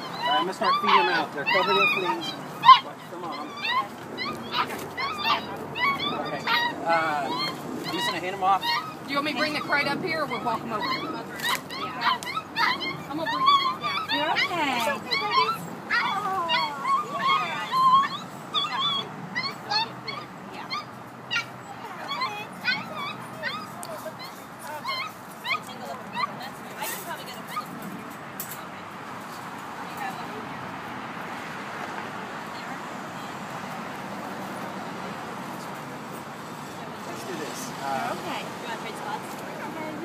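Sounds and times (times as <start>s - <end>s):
puppies whimpering and yelping: 0.0s - 28.0s.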